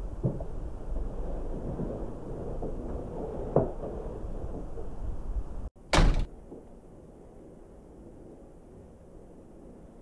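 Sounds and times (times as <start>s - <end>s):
door slamming: 5.8s - 6.4s.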